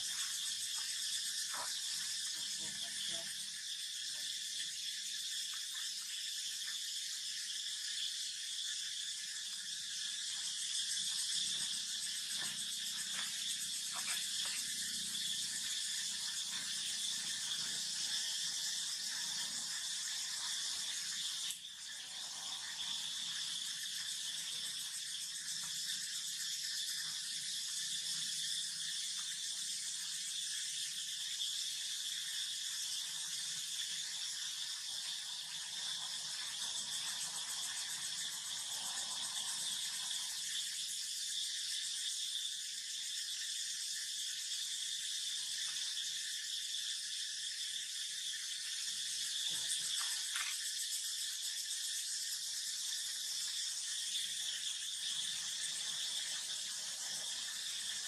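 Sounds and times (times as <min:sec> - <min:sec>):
insect chorus drone: 0:00.0 - 0:58.0.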